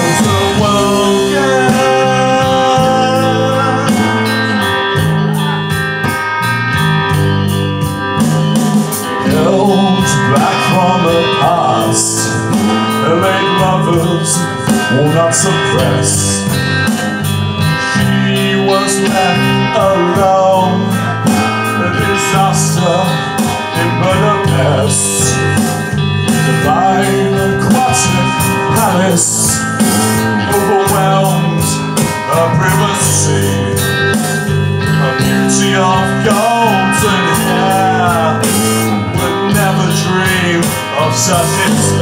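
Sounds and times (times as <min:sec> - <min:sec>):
live band playing: 0:00.0 - 0:42.0
steady cymbal beat: 0:00.0 - 0:42.0.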